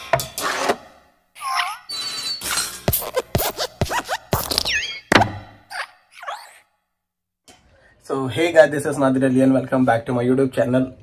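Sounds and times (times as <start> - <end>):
squeaky pitch-bending sounds: 1.4 - 6.6.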